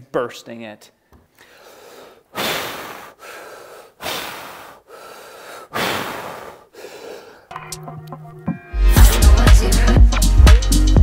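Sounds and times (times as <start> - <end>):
man breathing deeply: 1.4 - 7.5.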